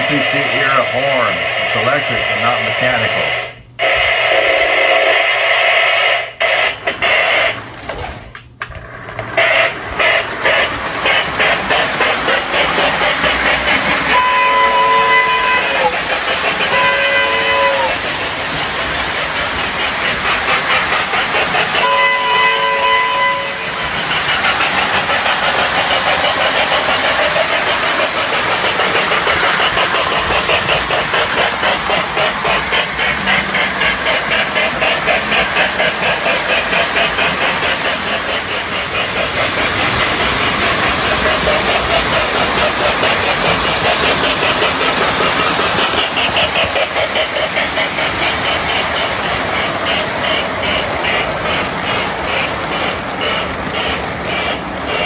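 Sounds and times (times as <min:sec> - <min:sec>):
model train steam chuffing: 0:00.0 - 0:55.0
electric train horn: 0:14.1 - 0:18.2, 0:21.8 - 0:23.9.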